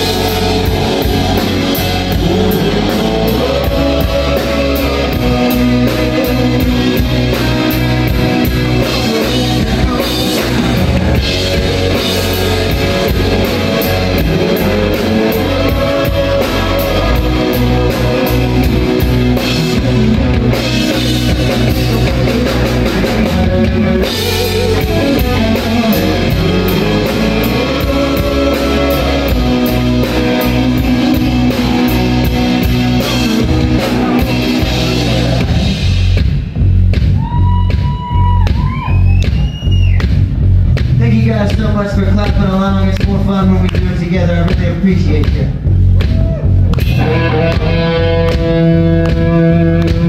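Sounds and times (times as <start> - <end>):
electric guitar: 0.0 - 36.5, 46.0 - 50.0
bass guitar: 0.0 - 50.0
drum kit: 0.0 - 50.0.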